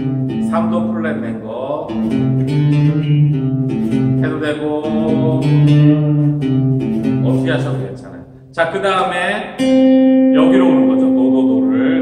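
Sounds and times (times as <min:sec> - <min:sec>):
acoustic guitar melody: 0:00.0 - 0:08.5, 0:09.5 - 0:12.0.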